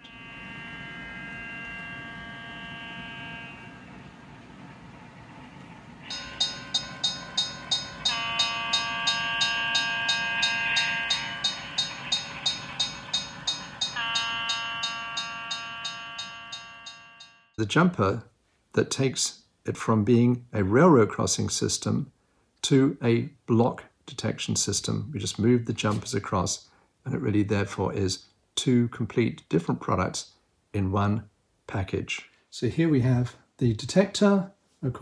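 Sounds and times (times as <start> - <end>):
crossing bell ringing: 0.0 - 4.1, 6.0 - 17.6
model train horn blasts: 0.0 - 4.4, 6.0 - 17.2.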